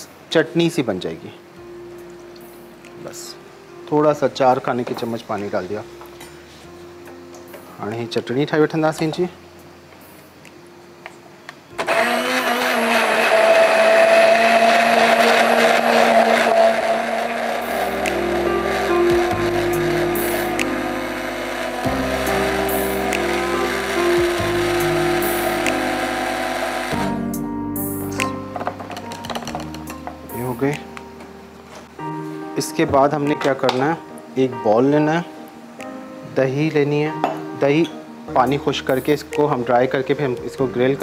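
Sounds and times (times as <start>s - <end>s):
stick blender whining: 11.8s - 27.3s.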